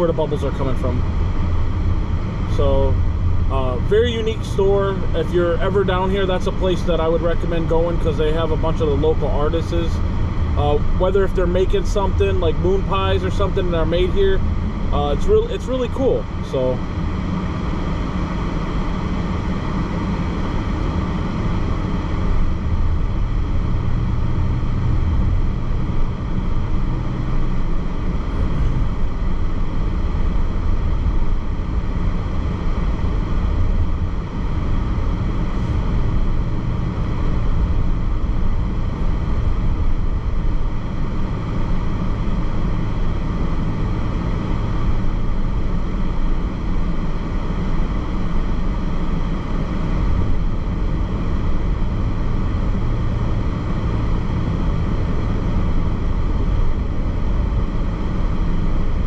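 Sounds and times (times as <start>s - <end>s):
road rumble inside moving car: 0.0s - 59.0s.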